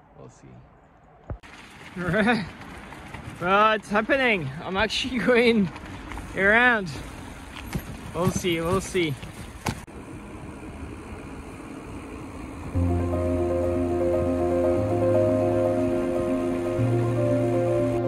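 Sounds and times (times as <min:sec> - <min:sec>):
steady rushing noise: 0:09.9 - 0:18.0
calm background music: 0:12.8 - 0:18.0.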